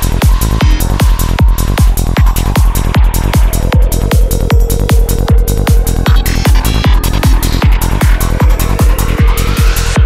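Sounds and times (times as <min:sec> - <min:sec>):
kick drum: 0:00.0 - 0:10.0
rolling bassline: 0:00.0 - 0:10.0.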